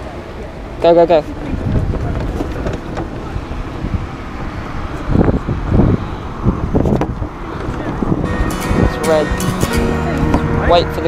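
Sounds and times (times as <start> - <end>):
street traffic: 0.0 - 11.0
wind buffeting microphone: 0.0 - 11.0.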